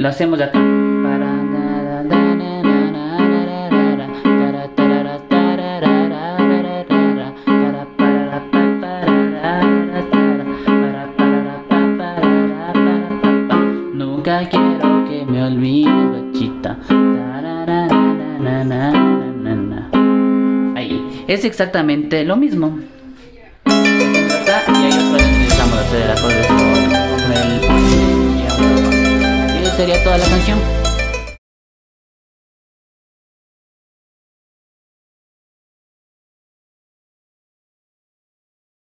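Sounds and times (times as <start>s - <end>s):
keyboard playing cumbia tune: 0.0s - 21.5s, 23.7s - 31.4s.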